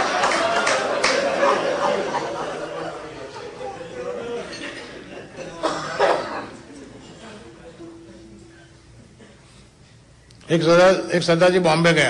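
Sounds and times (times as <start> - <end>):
person coughing: 5.5 - 6.6.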